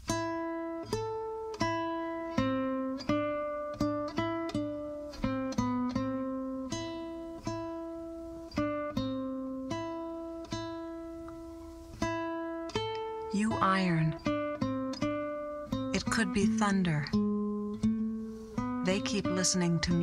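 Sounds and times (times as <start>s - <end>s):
classical guitar plucked notes: 0.0s - 20.0s.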